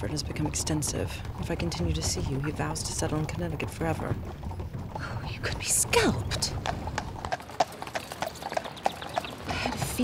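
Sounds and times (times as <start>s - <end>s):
horse hooves clip-clopping: 0.0s - 10.0s.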